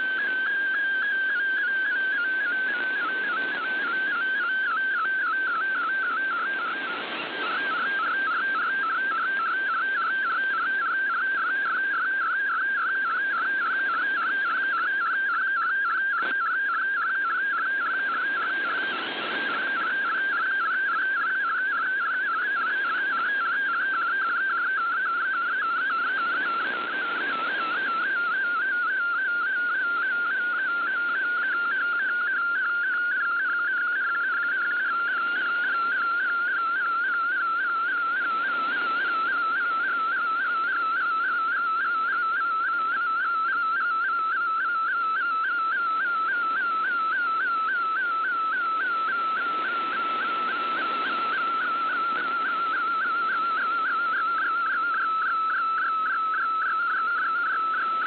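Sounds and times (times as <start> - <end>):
radio static: 1.2 - 12.2, 16.0 - 28.6, 45.8 - 58.0.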